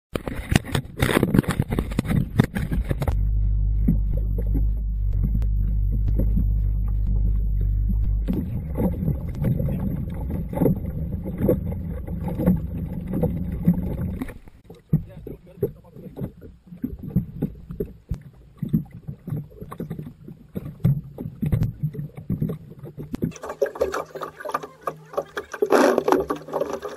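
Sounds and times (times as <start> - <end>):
boat engine humming: 1.9 - 21.2, 22.6 - 26.9
dive gear knocking and clattering: 20.7 - 26.9
voices: 24.4 - 25.5.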